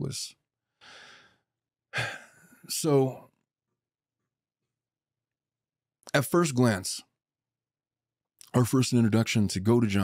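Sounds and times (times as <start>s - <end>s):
man speaking: 0.0s - 0.4s, 2.7s - 3.2s, 6.1s - 7.1s, 8.4s - 10.0s
man breathing into microphone: 0.8s - 1.4s
man sighing: 1.9s - 2.7s.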